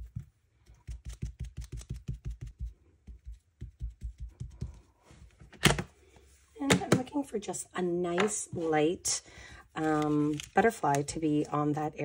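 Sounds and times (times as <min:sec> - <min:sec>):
ink dauber tapping on paper: 0:00.0 - 0:04.9.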